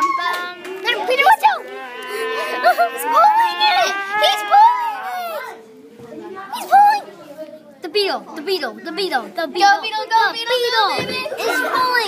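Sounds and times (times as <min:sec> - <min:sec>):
children talking and exclaiming: 0:00.0 - 0:12.0.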